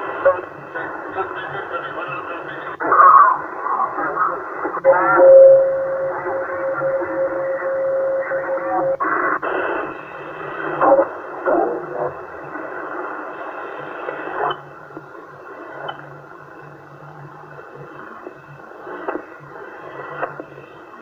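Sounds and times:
radio static: 0.0s - 14.5s
garbled radio voices: 0.3s - 5.3s
steady radio whistle: 4.8s - 9.9s.

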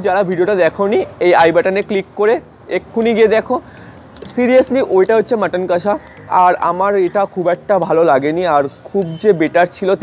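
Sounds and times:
faint high hiss: 0.0s - 3.4s
man speaking: 0.0s - 10.0s.

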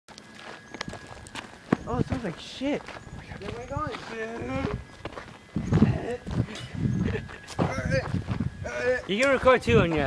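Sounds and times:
footsteps on gravel: 0.1s - 10.0s.

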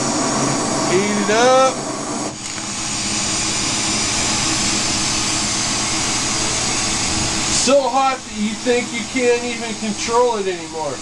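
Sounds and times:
torch flame hissing: 0.0s - 11.0s.

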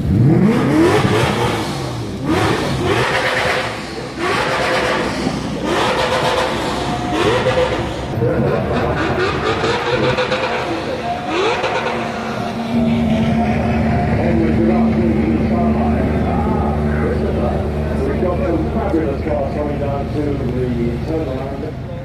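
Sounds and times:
race cars accelerating past: 0.0s - 22.0s.

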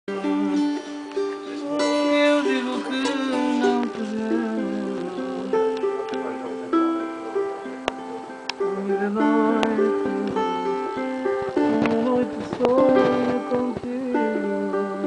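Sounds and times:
small guitar plucked melody: 0.1s - 15.0s.

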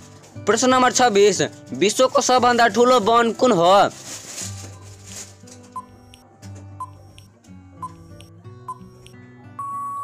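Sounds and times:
background music: 0.0s - 10.0s
long steady beep: 6.8s - 10.0s
short high timer beeps: 6.8s - 10.0s.

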